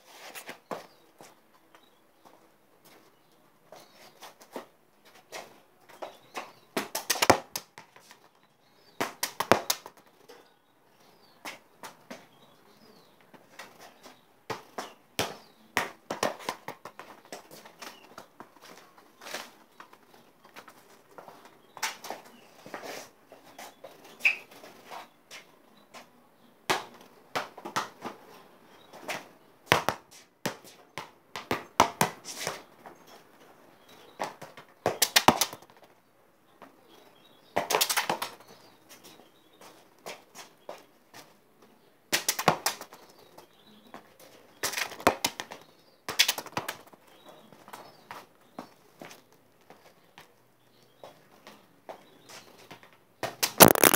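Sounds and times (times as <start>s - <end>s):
football kicked on stone paving: 8.9s - 10.0s, 29.7s - 32.2s, 53.3s - 53.9s
shoes scuffing: 53.6s - 53.9s.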